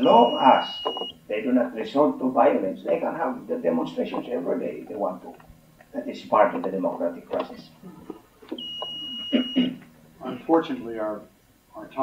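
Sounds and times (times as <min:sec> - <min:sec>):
high-pitched electronic beep: 0:00.0 - 0:01.2, 0:08.6 - 0:09.7.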